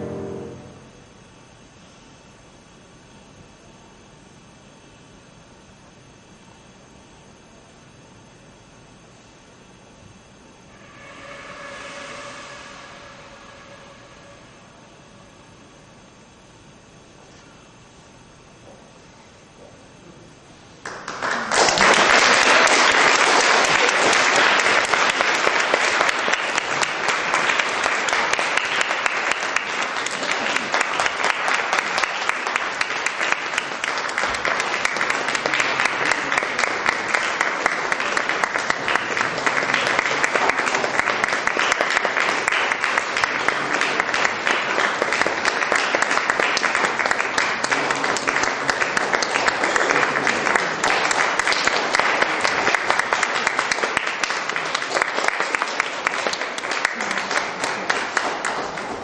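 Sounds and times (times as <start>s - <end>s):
audience applauding: 0.0s - 0.8s, 20.8s - 59.0s.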